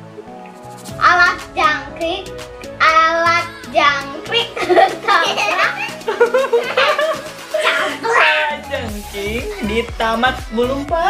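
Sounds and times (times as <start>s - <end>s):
music: 0.0s - 11.0s
voices talking and exclaiming: 1.0s - 11.0s.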